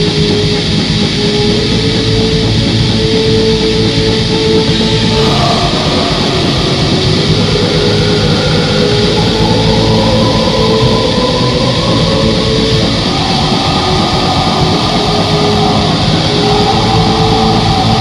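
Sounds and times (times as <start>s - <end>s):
distorted guitars and drums: 0.0s - 18.0s.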